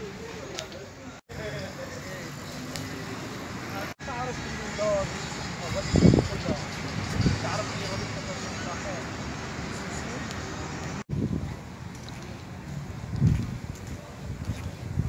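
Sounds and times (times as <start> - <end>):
street traffic noise: 0.0 - 15.0.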